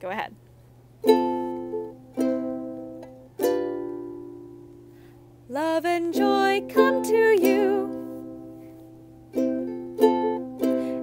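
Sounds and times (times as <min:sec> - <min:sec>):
ukulele strummed: 0:01.0 - 0:11.0.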